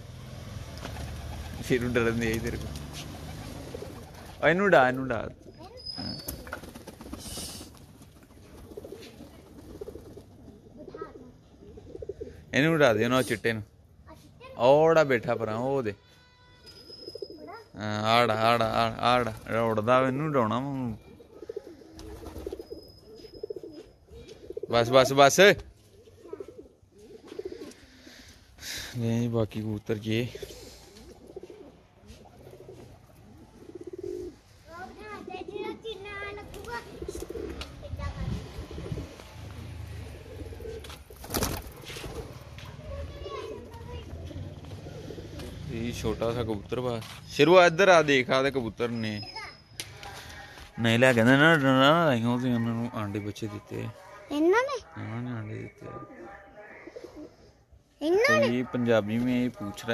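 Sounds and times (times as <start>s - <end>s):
pigeons cooing: 3.0s - 4.4s, 5.5s - 12.5s, 20.8s - 28.4s, 30.2s - 45.7s, 55.6s - 58.5s.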